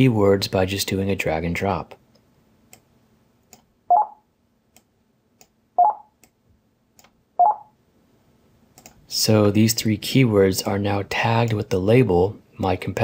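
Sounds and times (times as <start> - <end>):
faint mouse clicks: 2.1 - 2.9, 4.7 - 5.6, 8.7 - 9.0
computer interface beeps: 3.9 - 4.2, 5.8 - 6.1, 7.4 - 7.7.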